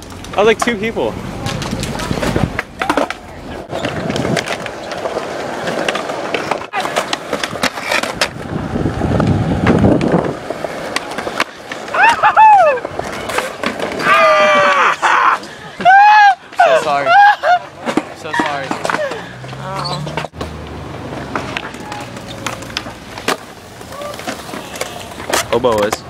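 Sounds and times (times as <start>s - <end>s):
skateboard wheels rolling on concrete: 0.0s - 26.0s
skateboard clacks and knocks: 1.3s - 16.2s, 16.8s - 26.0s
people yelling and screaming: 11.8s - 20.3s, 23.8s - 25.2s.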